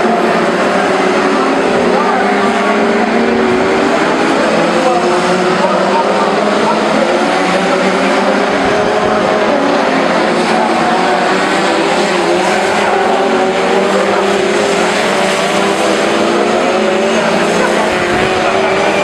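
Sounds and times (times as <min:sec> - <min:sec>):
stock car engines racing: 0:00.0 - 0:19.0.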